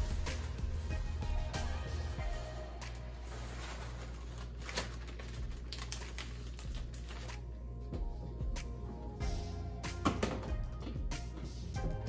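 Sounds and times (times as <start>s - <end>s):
plastic bag crinkling: 0.0s - 7.5s.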